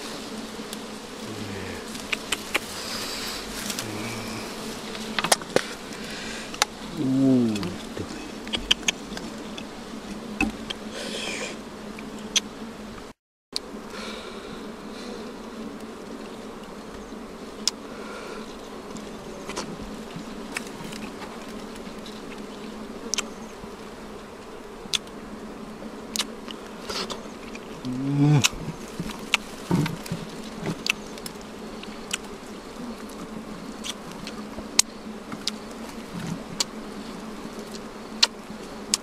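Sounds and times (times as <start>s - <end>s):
honey bees buzzing: 0.0s - 39.0s
clicks handling honeycomb: 1.6s - 10.9s, 18.5s - 25.2s, 26.0s - 39.0s.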